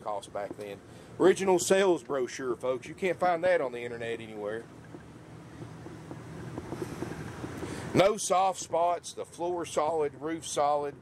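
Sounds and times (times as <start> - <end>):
generator humming: 0.0 - 11.0.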